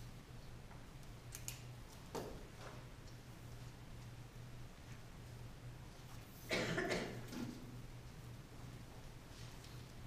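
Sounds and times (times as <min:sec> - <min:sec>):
faint steady hum: 0:00.0 - 0:10.0
person coughing: 0:06.5 - 0:07.3.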